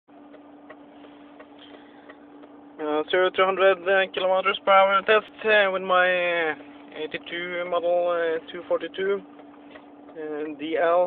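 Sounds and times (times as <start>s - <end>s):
faint steady hum: 0.1s - 11.0s
turn-signal relay ticking: 0.2s - 11.0s.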